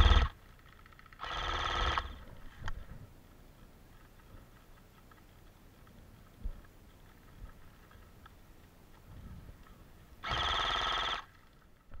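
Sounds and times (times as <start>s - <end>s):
electronic ringing tone with trill: 0.0s - 0.3s, 10.2s - 11.3s.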